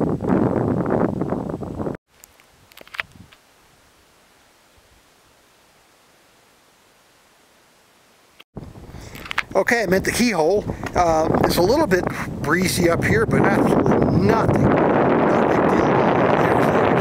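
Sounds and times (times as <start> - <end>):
wind buffeting microphone: 0.0 - 2.0, 8.6 - 17.0
faint steady hiss: 2.1 - 11.1.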